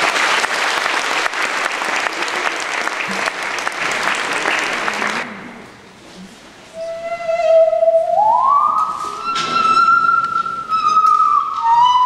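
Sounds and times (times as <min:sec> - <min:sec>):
bowed musical saw note: 0:06.7 - 0:12.0.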